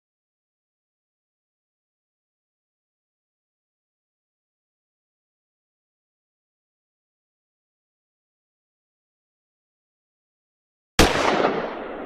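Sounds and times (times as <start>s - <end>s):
pistol gunshot: 11.0s - 12.0s.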